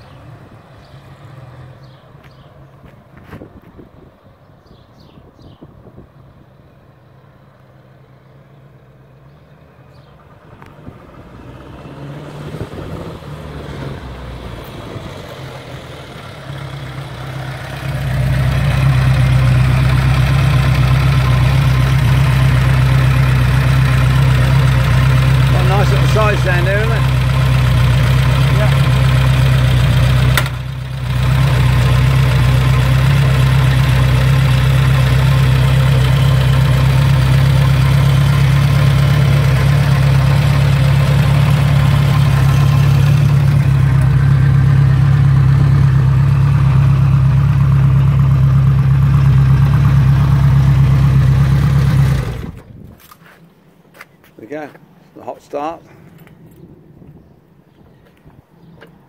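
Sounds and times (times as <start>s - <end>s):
motorcycle engine idling: 15.8s - 52.8s.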